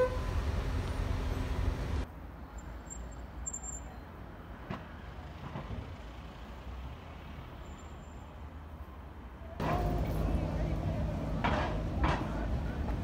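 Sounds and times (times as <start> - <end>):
distant city traffic rumble: 0.0 - 13.0.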